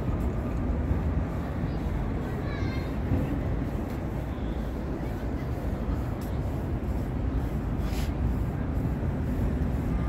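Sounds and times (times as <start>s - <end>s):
low rumble of city street: 0.0s - 10.0s.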